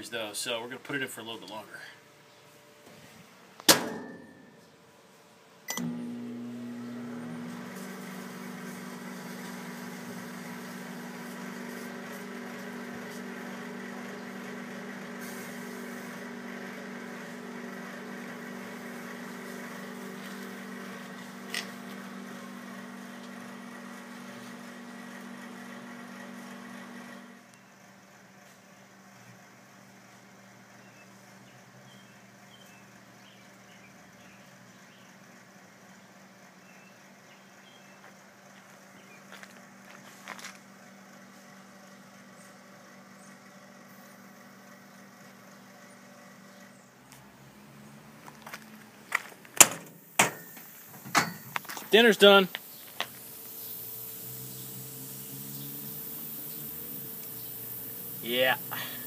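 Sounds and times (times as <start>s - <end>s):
sharp pop: 3.6s - 4.6s
microwave oven humming: 5.4s - 59.0s.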